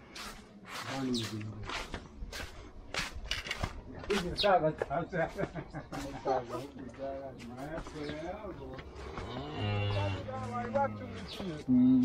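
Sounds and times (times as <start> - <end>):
cow mooing: 9.1 - 10.4.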